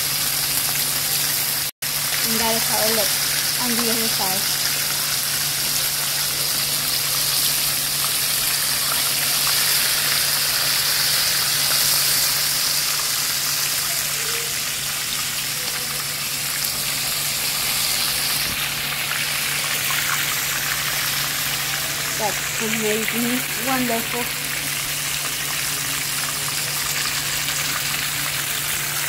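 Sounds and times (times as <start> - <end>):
fish sizzling in oil: 0.0 - 29.0.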